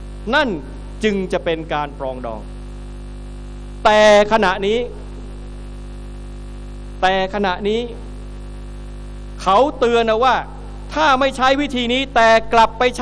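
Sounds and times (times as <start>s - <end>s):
electrical mains hum: 0.0s - 13.0s
man's amplified speech: 0.2s - 2.5s, 3.8s - 5.2s, 7.0s - 8.1s, 9.4s - 13.0s.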